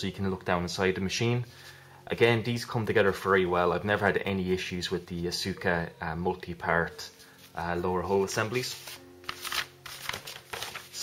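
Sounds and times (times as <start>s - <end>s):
paper rustling and crinkling: 7.2s - 11.0s.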